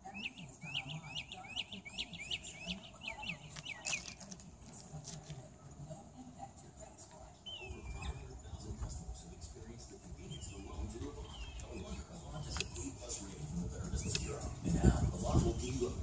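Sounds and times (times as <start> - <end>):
songbird chirping: 0.0 - 16.0.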